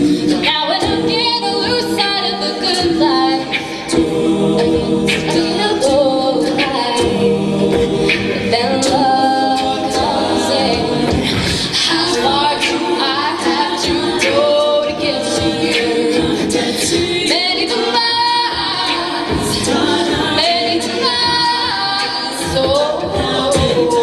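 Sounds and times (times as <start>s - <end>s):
a cappella group singing: 0.0s - 24.0s.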